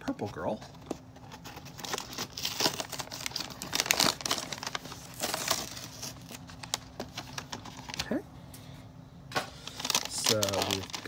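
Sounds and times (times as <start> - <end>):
plastic packaging crinkling: 0.7 - 8.1, 9.4 - 11.0.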